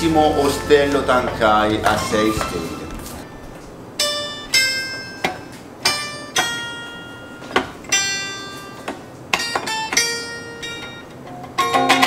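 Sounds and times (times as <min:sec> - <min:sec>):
plucked zither notes: 0:00.0 - 0:12.0.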